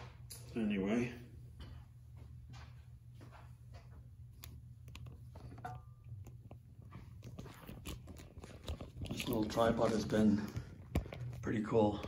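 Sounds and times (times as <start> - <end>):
low steady hum: 0.0 - 12.0
tripod handling clicks and rubbing: 7.2 - 10.0.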